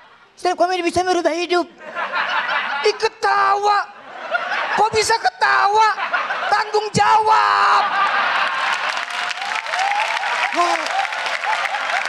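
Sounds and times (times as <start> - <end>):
audience laughing: 1.8 - 3.2, 3.8 - 9.6, 10.2 - 12.0
audience clapping: 7.8 - 12.0.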